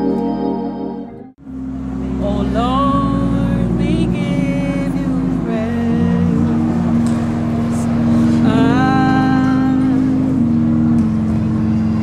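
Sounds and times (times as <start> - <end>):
low bass line: 0.0 - 12.0
organ holding sustained chords: 0.0 - 12.0.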